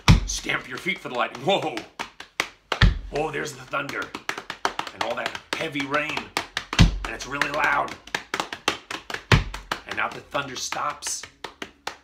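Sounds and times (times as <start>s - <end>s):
foot stamp thump: 0.0s - 1.0s, 2.7s - 3.1s, 4.0s - 10.2s
hands patting on thighs: 0.0s - 12.0s.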